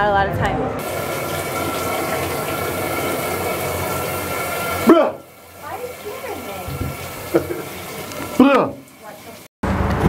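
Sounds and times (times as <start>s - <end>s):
shower water running: 0.8s - 9.6s.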